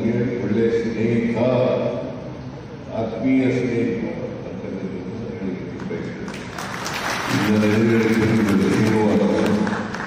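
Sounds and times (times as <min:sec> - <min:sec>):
man's amplified voice: 0:00.0 - 0:06.5, 0:07.2 - 0:10.0
audience clapping: 0:05.8 - 0:10.0.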